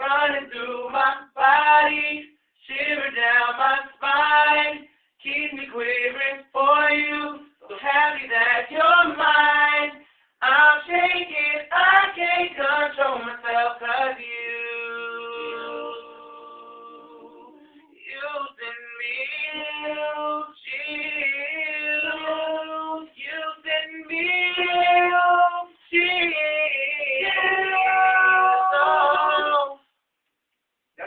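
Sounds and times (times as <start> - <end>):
young men singing a cappella: 0.0 - 29.8
boys singing high notes: 21.8 - 29.8.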